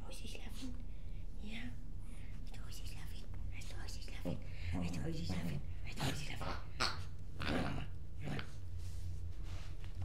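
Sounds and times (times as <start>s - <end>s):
woman whispering: 0.0s - 1.8s, 2.4s - 6.7s
steady low hum: 0.0s - 10.0s.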